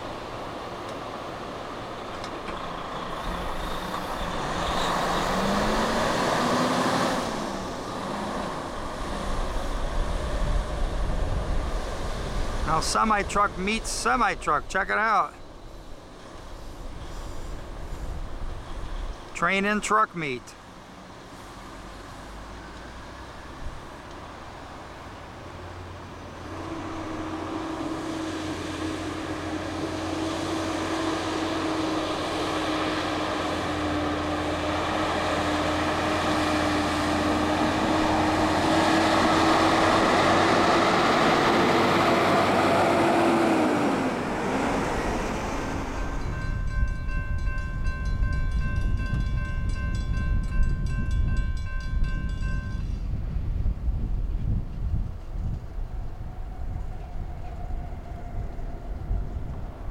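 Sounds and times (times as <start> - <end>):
wind rumbling on microphone: 7.5 - 12.7, 36.0 - 59.9
railroad crossing bell ringing: 46.0 - 53.1.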